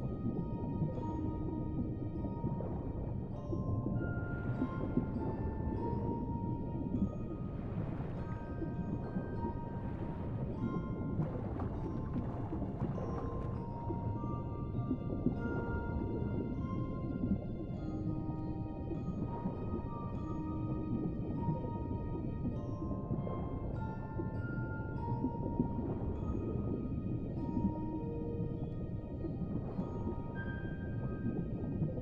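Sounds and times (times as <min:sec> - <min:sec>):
muffled underwater rumble: 0:00.0 - 0:32.0.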